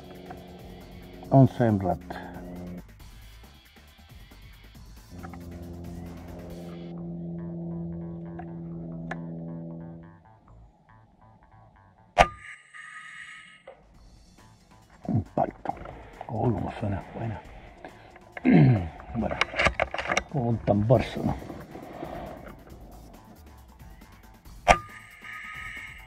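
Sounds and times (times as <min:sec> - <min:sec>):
background music low note: 0:00.0 - 0:12.4, 0:13.6 - 0:26.0
faint ringing: 0:05.1 - 0:14.6, 0:15.5 - 0:26.0.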